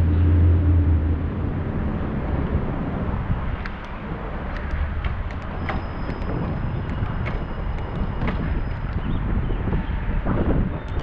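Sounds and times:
low steady hum: 0:00.0 - 0:09.1
rushing wind: 0:00.0 - 0:11.0
bicycle tyre noise on pavement: 0:01.3 - 0:11.0.

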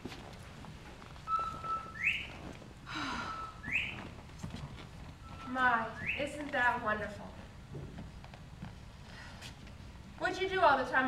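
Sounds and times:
whistled call: 0:01.3 - 0:02.3, 0:03.2 - 0:04.0, 0:05.2 - 0:06.2.

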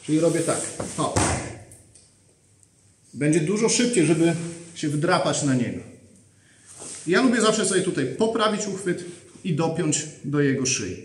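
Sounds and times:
fabric rustle: 0:06.6 - 0:07.4.

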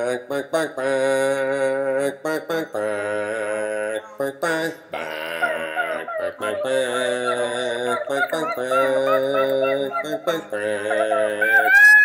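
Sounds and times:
person singing long notes: 0:00.0 - 0:12.0.

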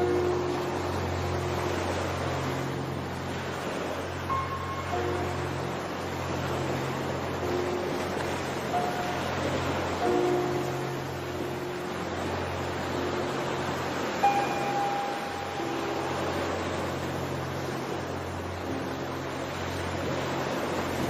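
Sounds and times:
ocean waves washing: 0:00.0 - 0:21.0
slow ambient music: 0:00.0 - 0:21.0.

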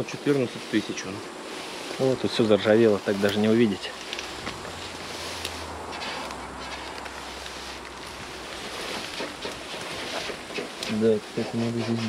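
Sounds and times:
light rustling: 0:00.0 - 0:12.0.

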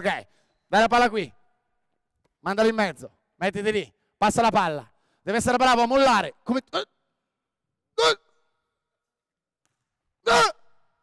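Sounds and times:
man speaking: 0:00.0 - 0:01.4, 0:02.4 - 0:07.0.

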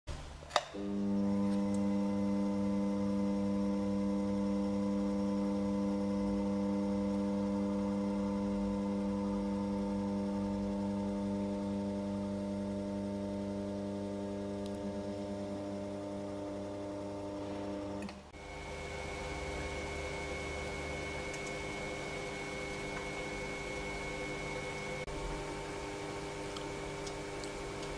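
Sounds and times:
electric motor humming: 0:00.8 - 0:27.9.

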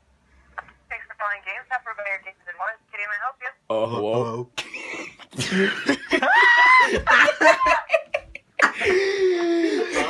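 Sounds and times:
person speaking over phone speaker: 0:00.9 - 0:03.6.

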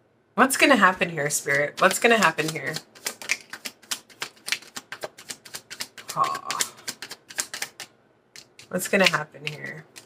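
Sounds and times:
cards being shuffled: 0:01.3 - 0:10.0.

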